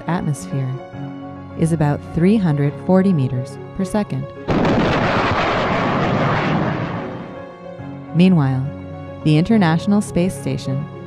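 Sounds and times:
fighter jet flying past: 0:04.6 - 0:07.7.

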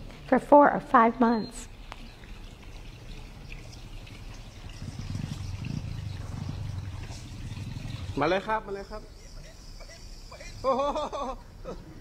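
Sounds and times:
water trickling: 0:00.0 - 0:11.4
motorbike engine rumble: 0:04.6 - 0:08.2.

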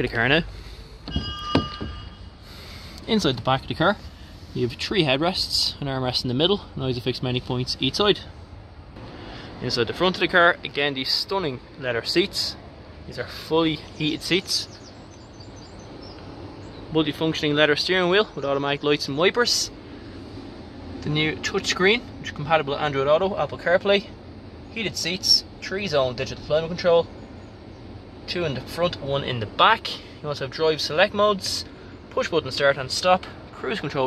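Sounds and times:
faint high ringing tone: 0:01.0 - 0:02.7
soft knocks: 0:01.1 - 0:02.1.

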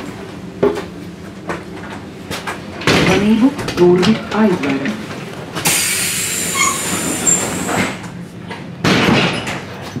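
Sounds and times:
compressed air hissing: 0:05.7 - 0:07.9.

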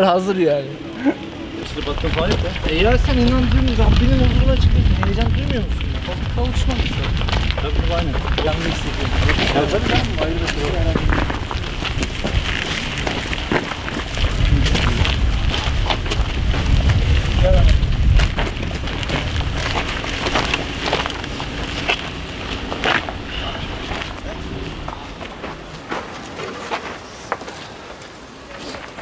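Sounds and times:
footsteps: 0:00.9 - 0:29.0
cart rolling on dirt road: 0:01.3 - 0:29.0.

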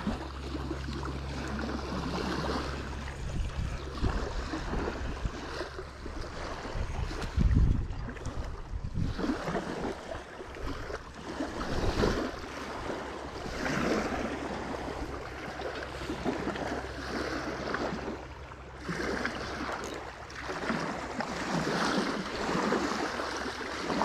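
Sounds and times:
low wind rumble: 0:00.0 - 0:23.4
waves lapping on rocky shore: 0:00.0 - 0:24.0.

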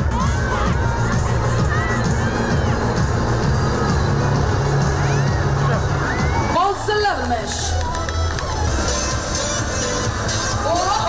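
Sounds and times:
crowd cheering and shouting: 0:00.0 - 0:11.0
music playing: 0:00.0 - 0:11.0
whoops: 0:06.0 - 0:06.6.

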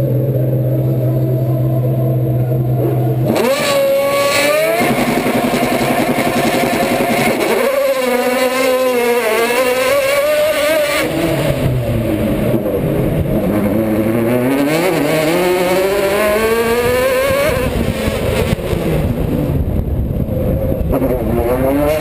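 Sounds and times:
race car engine revving: 0:00.0 - 0:22.0.

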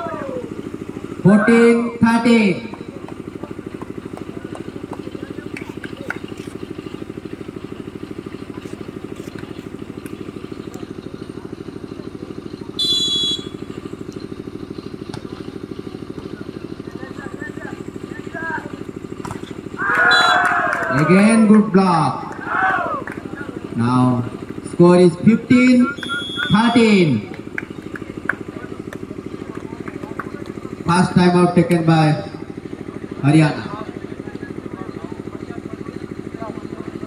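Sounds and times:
pulsing low engine drone: 0:00.0 - 0:37.0
referee whistle blast: 0:12.8 - 0:13.6, 0:19.8 - 0:20.6, 0:25.8 - 0:27.0.

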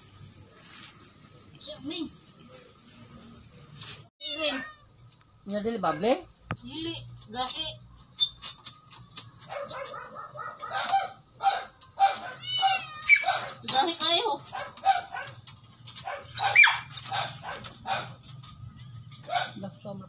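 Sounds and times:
dog barking and yelping: 0:09.4 - 0:13.8, 0:14.4 - 0:18.2, 0:19.2 - 0:19.6.

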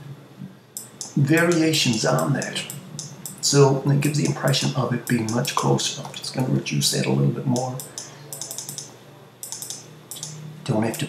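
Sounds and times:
low steady hum: 0:00.0 - 0:11.0
computer keyboard keys clicking: 0:00.8 - 0:03.4, 0:04.2 - 0:06.5, 0:07.6 - 0:11.0.

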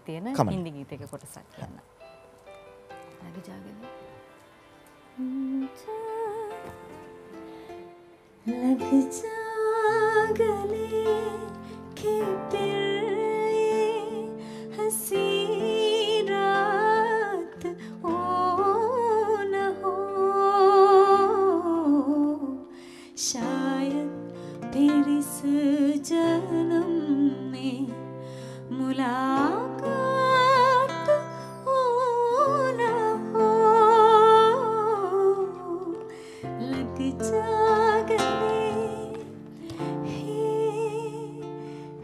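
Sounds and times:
acoustic guitar: 0:00.4 - 0:42.0
woman singing: 0:05.2 - 0:07.4, 0:08.4 - 0:42.0.

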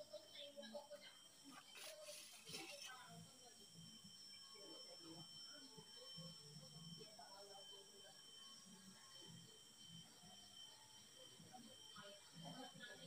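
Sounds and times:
faint indistinct voice: 0:00.0 - 0:13.0.

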